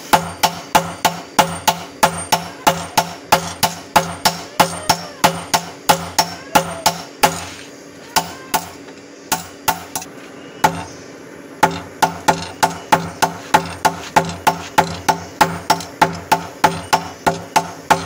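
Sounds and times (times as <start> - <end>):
hammers striking steel on anvil: 0.0 - 7.6, 8.2 - 10.9, 11.6 - 18.0.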